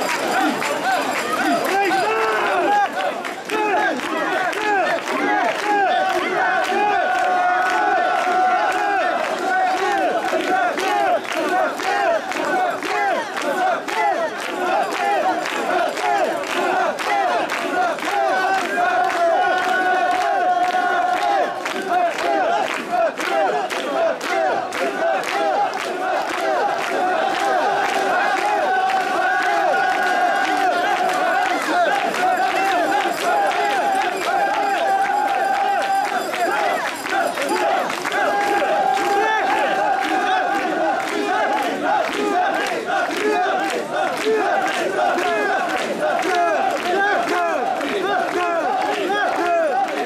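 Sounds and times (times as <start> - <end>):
crowd chanting and shouting: 0.0 - 50.0.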